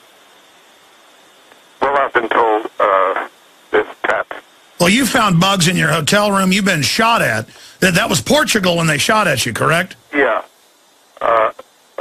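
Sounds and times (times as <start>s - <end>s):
steady hiss: 0.0s - 12.0s
man speaking over telephone line: 1.8s - 10.5s, 11.2s - 11.6s.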